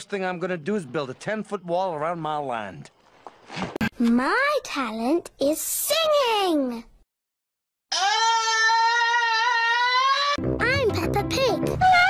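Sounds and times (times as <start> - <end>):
cartoon child singing high note: 10.6 - 12.0.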